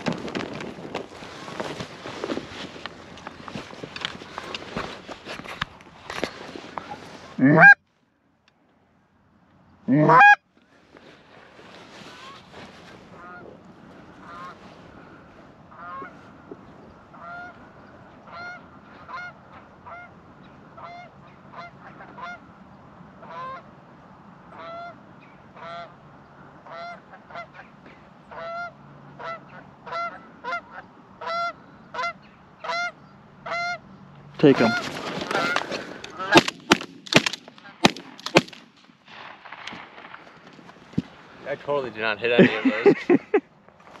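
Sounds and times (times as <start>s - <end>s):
geese honking: 6.7s - 7.8s, 9.9s - 10.4s, 12.1s - 16.5s, 17.1s - 22.6s, 23.2s - 23.7s, 24.5s - 36.5s.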